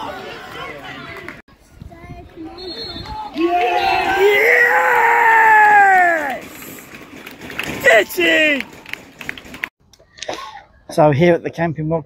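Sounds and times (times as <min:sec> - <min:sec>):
man cheering: 0:03.4 - 0:06.4, 0:07.8 - 0:08.7
man yelling: 0:03.4 - 0:06.4, 0:07.8 - 0:08.6.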